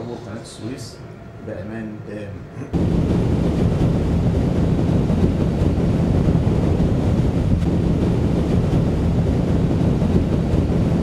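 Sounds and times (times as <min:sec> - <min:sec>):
boat engine drone: 0:02.5 - 0:11.0
wind buffeting microphone: 0:02.7 - 0:11.0.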